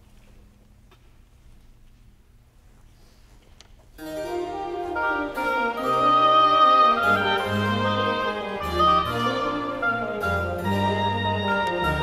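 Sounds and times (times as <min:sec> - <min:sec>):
baroque string orchestra: 0:04.0 - 0:12.0.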